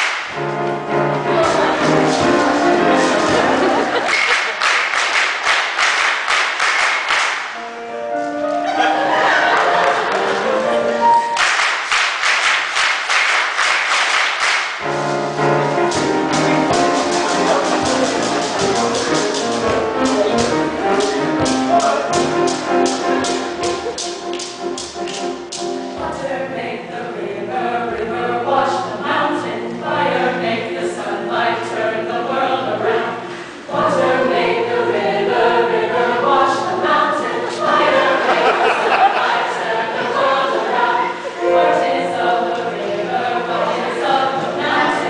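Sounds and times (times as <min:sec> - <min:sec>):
steady percussive beat: 0:00.0 - 0:04.3, 0:14.7 - 0:26.0
mixed choir singing: 0:00.4 - 0:04.2, 0:08.8 - 0:11.3, 0:14.8 - 0:24.0, 0:25.6 - 0:45.0.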